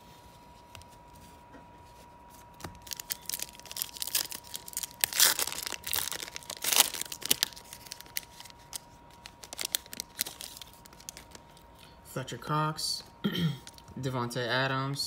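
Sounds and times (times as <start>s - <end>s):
wrapper crinkling: 2.4s - 11.8s, 13.6s - 13.9s
foil card pack tearing: 2.5s - 11.6s.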